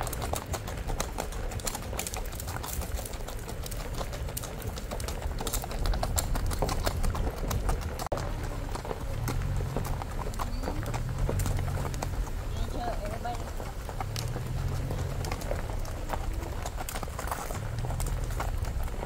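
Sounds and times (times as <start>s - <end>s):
horse hoofbeats on dirt: 0.0s - 19.0s.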